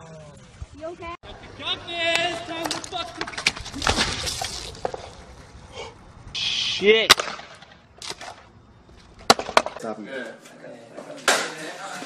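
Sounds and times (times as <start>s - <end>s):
sharp knocks: 9.2s - 9.8s.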